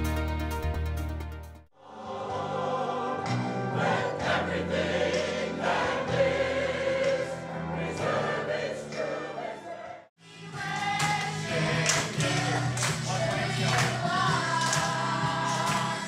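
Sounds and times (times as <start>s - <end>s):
children's choir singing: 1.8s - 16.0s
mixed choir singing: 1.8s - 16.0s.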